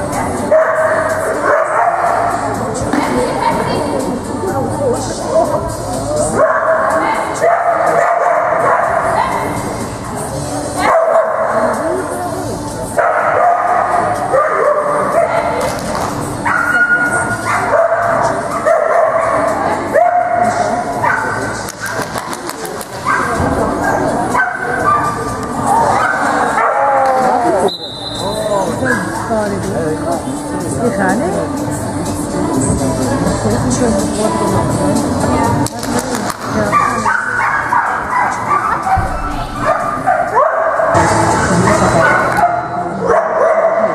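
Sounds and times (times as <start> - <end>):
music playing: 0.0 - 43.9
dog barking and yipping: 36.7 - 39.0, 39.6 - 41.0.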